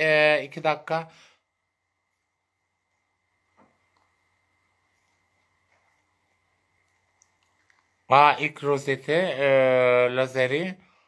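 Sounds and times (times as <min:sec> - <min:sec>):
faint room hum: 0:00.0 - 0:11.0
faint clicks: 0:06.8 - 0:08.0.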